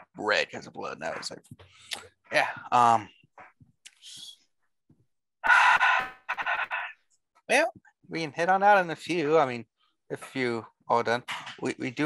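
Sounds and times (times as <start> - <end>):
person breathing into microphone: 5.4 - 6.9.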